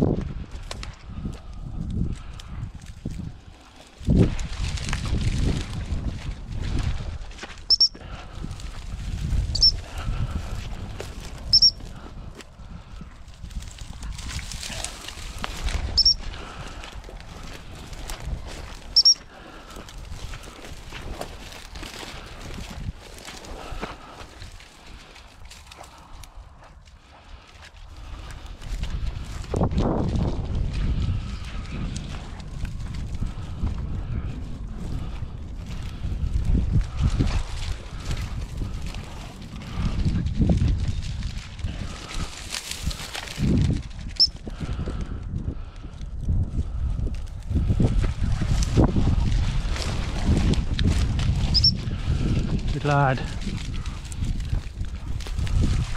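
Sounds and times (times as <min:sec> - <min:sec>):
footsteps through dry scrub: 0:00.0 - 0:55.9
wind rumble on microphone: 0:00.0 - 0:55.9
dog whistle pips: 0:07.7 - 0:08.0, 0:09.5 - 0:09.8, 0:11.5 - 0:11.8, 0:16.0 - 0:16.2, 0:19.0 - 0:19.2, 0:51.5 - 0:51.8.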